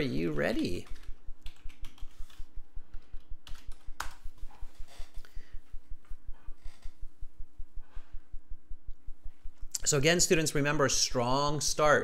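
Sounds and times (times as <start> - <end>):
keyboard typing: 0.0 - 4.2
low regular pulse: 0.0 - 11.9.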